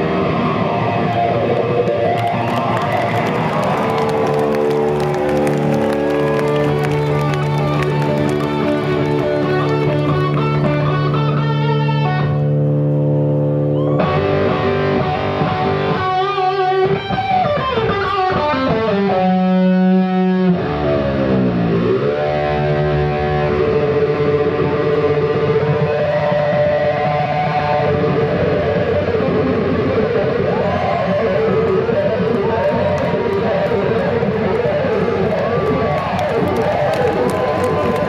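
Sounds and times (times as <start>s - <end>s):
distorted electric guitar: 0.0s - 38.0s.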